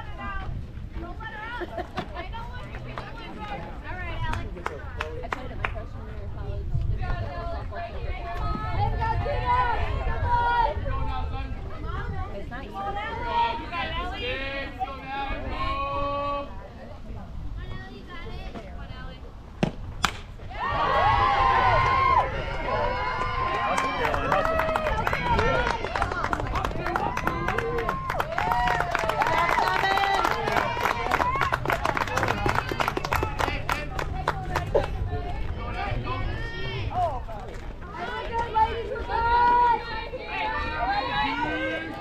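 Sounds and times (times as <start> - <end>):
voices chatting: 0.0 - 42.0
people clapping: 2.6 - 5.8, 21.7 - 35.6
bat hitting softball: 19.6 - 20.4
crowd shouting and cheering: 20.4 - 37.3, 37.9 - 42.0.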